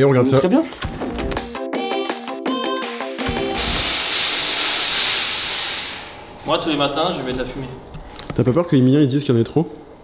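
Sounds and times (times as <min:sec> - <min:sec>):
short musical sting: 0:03.2 - 0:06.1
fog machine hissing: 0:03.3 - 0:06.4.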